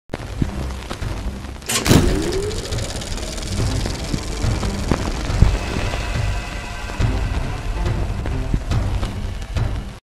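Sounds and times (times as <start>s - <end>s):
short rising tone: 1.7s - 7.4s
sharp hit: 1.7s - 8.3s.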